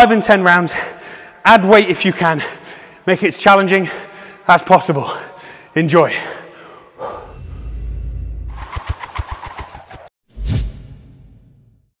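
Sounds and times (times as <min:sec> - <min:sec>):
fast run of sharp hits: 0:08.5 - 0:10.1.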